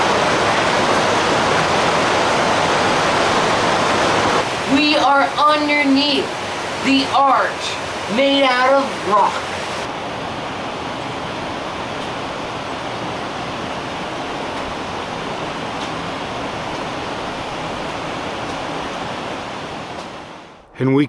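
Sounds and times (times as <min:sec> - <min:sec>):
creek rushing: 0:00.0 - 0:20.6.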